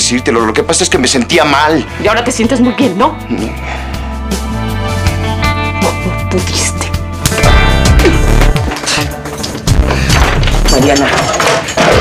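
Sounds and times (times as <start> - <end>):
loud dramatic music: 2.0 - 12.0
slap across the face: 7.2 - 7.5.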